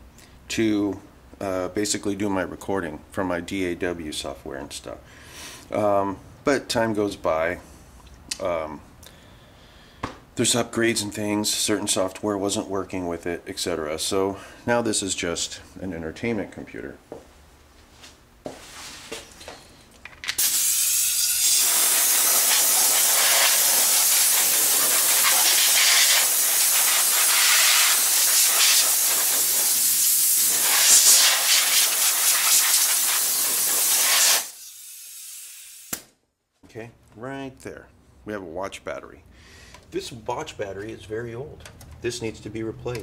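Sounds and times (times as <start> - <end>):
compressed air hissing: 20.4 - 36.0.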